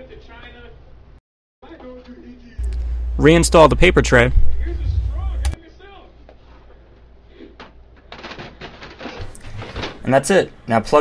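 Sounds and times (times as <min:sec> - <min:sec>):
click: 0:02.6 - 0:02.9
low hum: 0:02.6 - 0:05.6.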